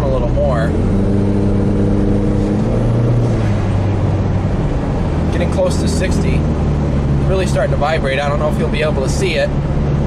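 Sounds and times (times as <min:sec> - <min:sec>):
car engine accelerating: 0:00.0 - 0:10.0
road noise inside car: 0:00.0 - 0:10.0.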